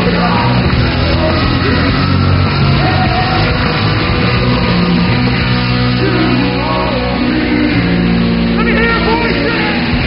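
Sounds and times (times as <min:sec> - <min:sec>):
person singing: 0:00.0 - 0:04.8, 0:05.8 - 0:10.0
distorted guitar chords: 0:00.0 - 0:10.0
rock band playing loud: 0:00.0 - 0:10.0.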